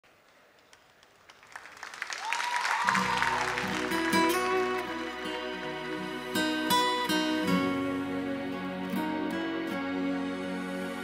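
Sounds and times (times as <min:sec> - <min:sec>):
audience applause: 0:00.1 - 0:06.0.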